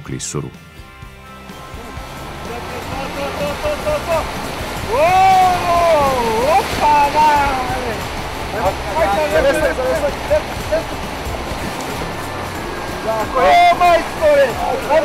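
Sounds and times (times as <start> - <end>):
river rapids rushing: 1.4 - 15.0
people yelling and whooping: 1.8 - 15.0.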